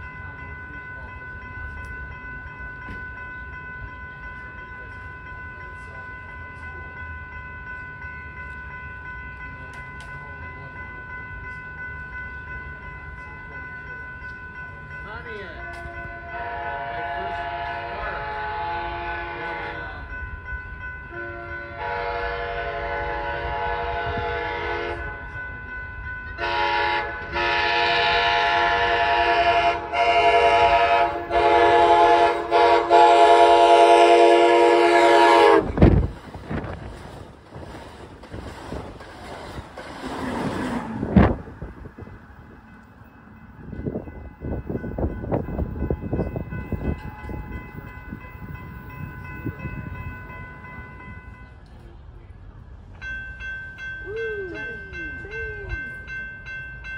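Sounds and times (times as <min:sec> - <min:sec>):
locomotive air horn: 0:16.1 - 0:19.8, 0:21.1 - 0:25.2, 0:26.4 - 0:35.8
train rushing past: 0:21.1 - 0:56.2.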